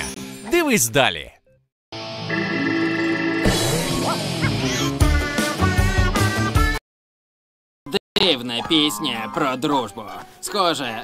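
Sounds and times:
bouncy cartoon tune: 0:03.5 - 0:06.8.

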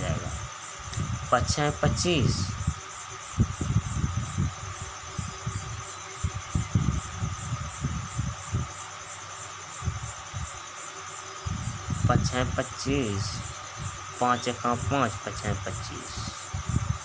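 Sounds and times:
pulsing insect chirp: 0:00.0 - 0:17.0.

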